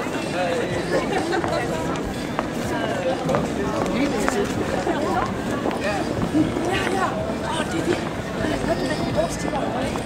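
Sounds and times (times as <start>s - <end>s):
people talking: 0.0s - 10.0s
street noise: 0.0s - 10.0s.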